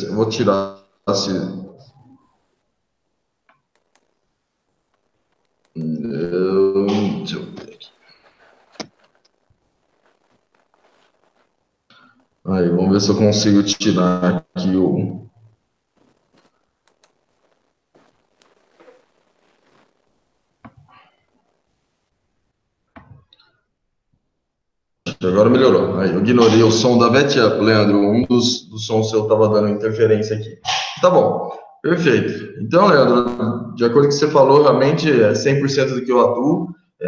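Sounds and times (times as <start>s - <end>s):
faint clicks: 3.4s - 4.2s, 4.8s - 6.0s, 15.4s - 21.7s.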